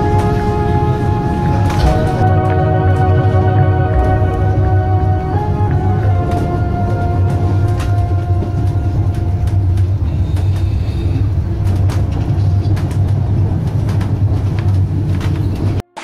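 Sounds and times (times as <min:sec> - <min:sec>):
train rumbling: 0:00.0 - 0:15.9
train track clicks: 0:00.0 - 0:16.0.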